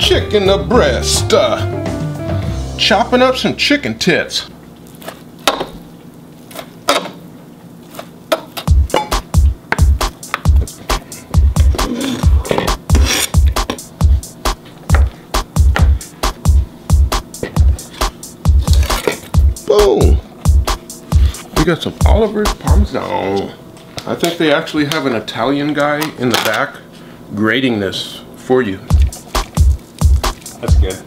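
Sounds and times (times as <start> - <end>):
music with heavy bass beat: 8.7 - 22.9, 28.9 - 31.0
knife chopping on plastic board: 14.5 - 16.0.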